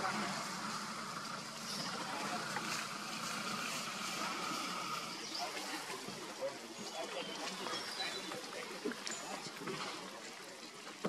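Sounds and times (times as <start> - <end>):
quiet talk of several people: 0.0 - 11.0.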